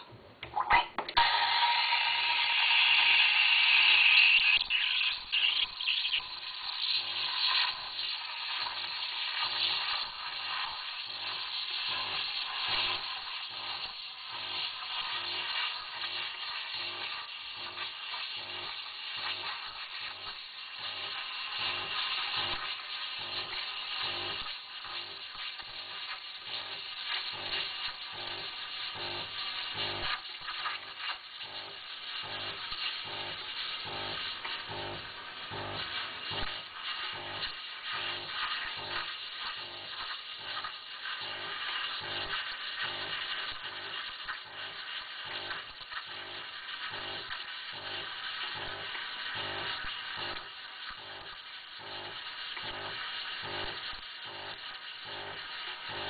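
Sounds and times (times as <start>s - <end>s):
steam wand hissing: 1.2s - 56.0s.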